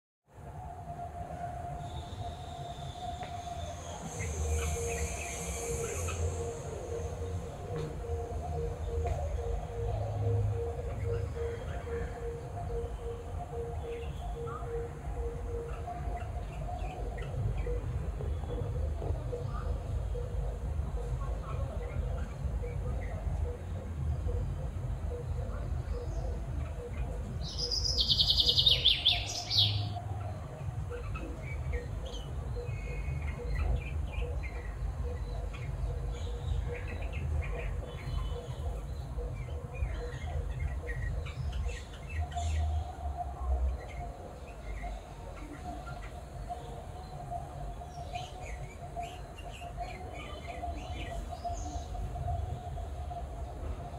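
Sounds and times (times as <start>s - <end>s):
songbird singing: 0.3s - 53.9s
faint bird chirps: 1.8s - 53.9s
low rumble and hum: 2.0s - 53.9s.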